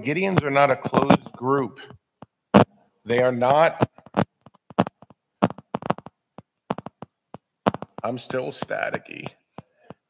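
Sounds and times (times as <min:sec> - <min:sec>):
microphone crackling: 0:00.0 - 0:10.0.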